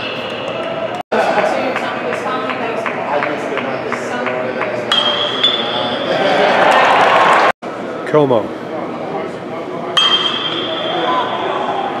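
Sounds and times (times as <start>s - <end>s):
metal bat hitting ball: 4.9s - 5.6s, 10.0s - 10.9s.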